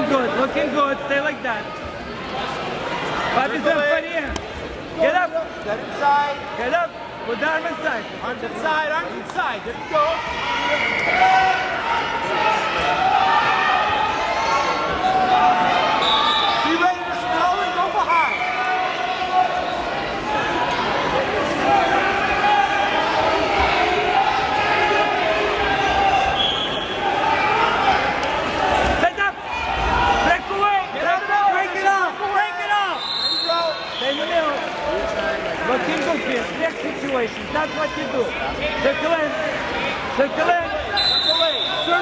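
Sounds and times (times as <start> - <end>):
crowd talking and shouting: 0.0 - 42.0.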